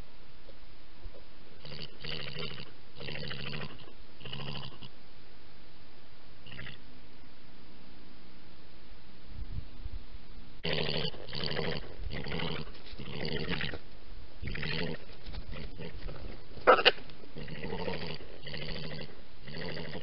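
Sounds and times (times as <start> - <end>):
badger purring calls: 6.4 - 6.8, 10.6 - 13.8, 14.4 - 20.0.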